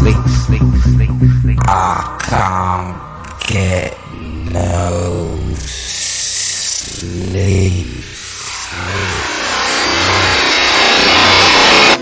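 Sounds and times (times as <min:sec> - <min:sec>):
dance beat: 0:00.0 - 0:01.7
low bass: 0:00.0 - 0:03.5
rising noise sweep: 0:08.3 - 0:12.0.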